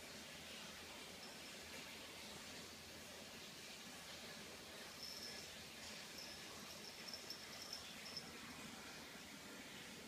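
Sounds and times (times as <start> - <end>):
room hiss: 0.0 - 10.0
faint high-pitched chirping: 4.8 - 8.7.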